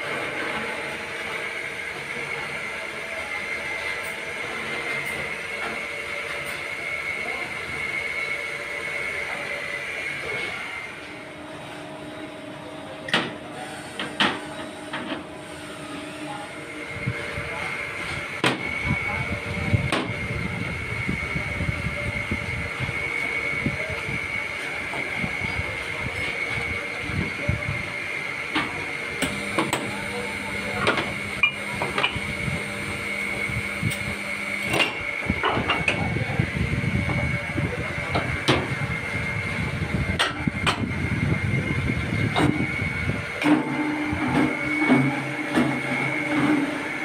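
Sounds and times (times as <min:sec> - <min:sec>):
machinery high whine: 0:00.0 - 0:47.0.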